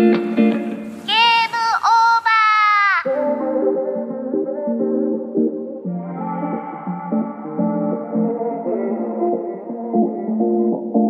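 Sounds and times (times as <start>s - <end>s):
high processed vocal music: 1.1s - 11.0s.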